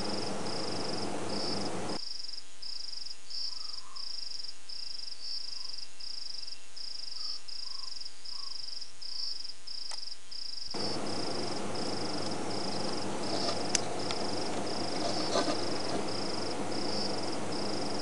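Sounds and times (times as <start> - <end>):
background hiss: 0.0 - 18.0
insect chirping: 0.0 - 18.0.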